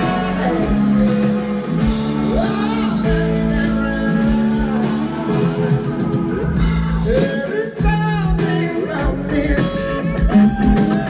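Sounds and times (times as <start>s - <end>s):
drums: 0.0s - 11.0s
electric guitar: 0.0s - 11.0s.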